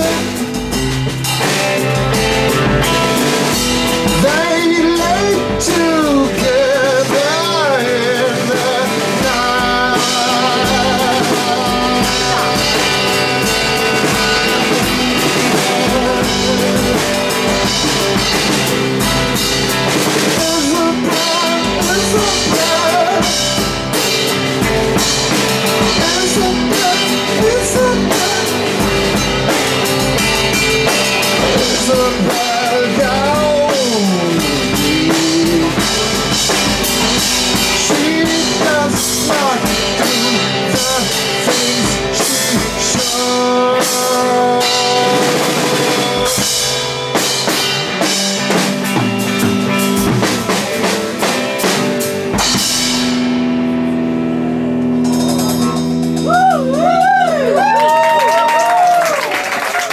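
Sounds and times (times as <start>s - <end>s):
drum kit with cymbals: 0.0s - 59.9s
electric guitars bending pitch: 0.0s - 59.9s.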